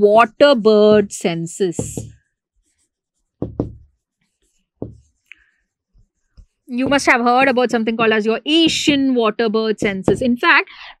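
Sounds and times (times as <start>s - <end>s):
chalk scratching on board: 1.8s - 5.2s
dull knocks: 3.4s - 3.9s, 4.8s - 5.0s, 6.8s - 7.3s, 8.0s - 9.1s, 9.8s - 10.4s.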